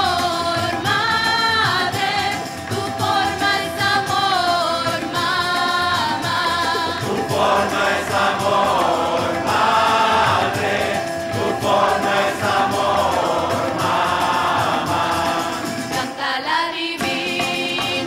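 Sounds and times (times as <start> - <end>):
choir singing devotional song: 0.0 - 18.0.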